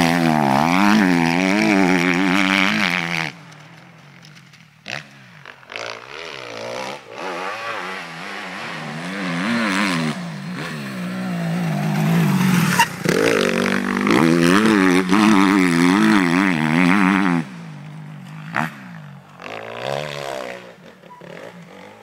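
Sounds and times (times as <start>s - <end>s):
motocross bike engine revving: 0.0s - 22.0s.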